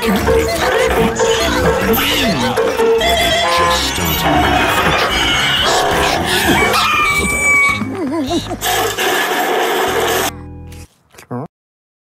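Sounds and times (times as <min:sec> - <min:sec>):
cartoon character voices: 0:00.0 - 0:08.6
cartoon sound effects: 0:00.0 - 0:08.7
cartoon music: 0:00.0 - 0:09.1.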